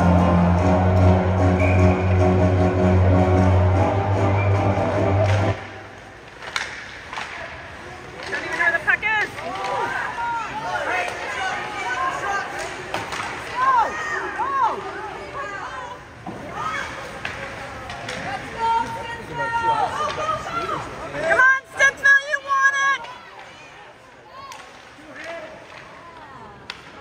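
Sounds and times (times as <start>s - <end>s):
music with heavy bass: 0.0s - 5.6s
spectators shouting and cheering: 0.0s - 5.9s.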